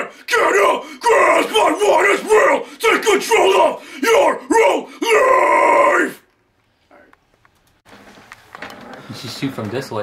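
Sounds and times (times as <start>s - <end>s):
man growling hardcore vocals: 0.0s - 6.2s.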